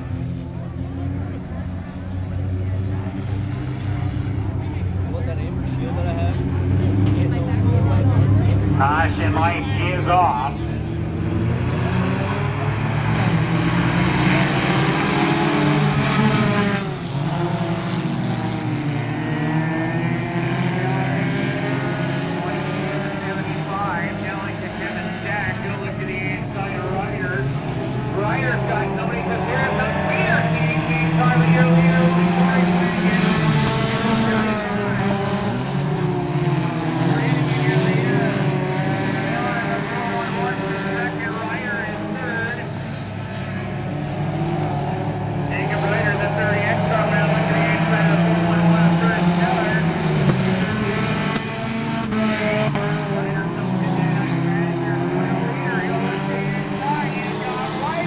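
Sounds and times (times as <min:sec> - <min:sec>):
race car engines revving: 0:00.0 - 0:58.0.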